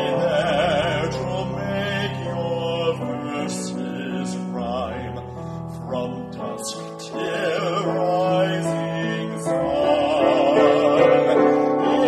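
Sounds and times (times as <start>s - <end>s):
person singing a hymn: 0.0s - 12.0s
piano accompaniment: 0.0s - 12.0s.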